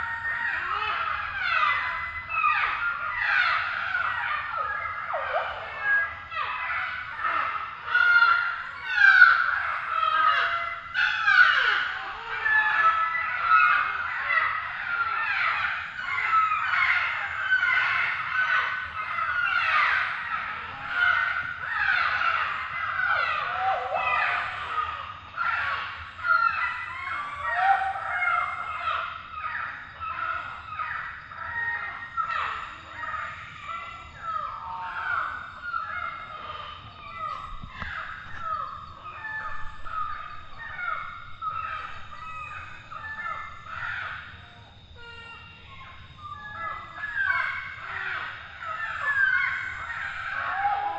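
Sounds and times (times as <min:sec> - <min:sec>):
tropical birds calling: 0:00.0 - 0:50.9.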